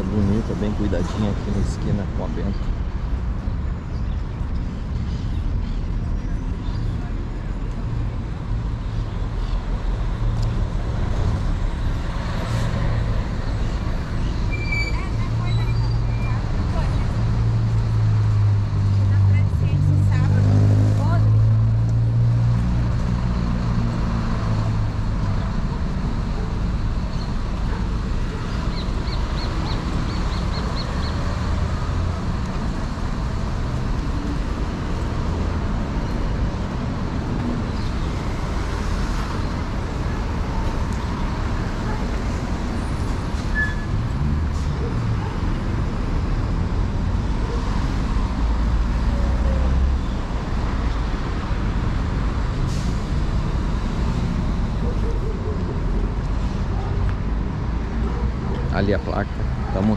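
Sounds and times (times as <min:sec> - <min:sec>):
low rumble of road traffic: 0:00.0 - 0:59.9.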